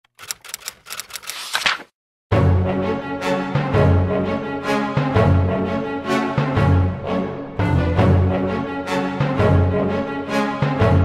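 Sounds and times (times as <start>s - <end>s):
keyboard clicks: 0.1s - 1.6s.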